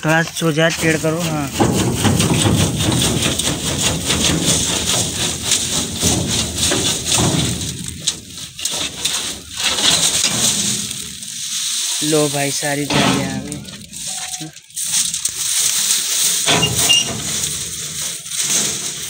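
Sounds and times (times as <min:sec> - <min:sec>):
dry straw rustling and crackling: 0:00.0 - 0:19.0
metal scraping: 0:00.0 - 0:19.0.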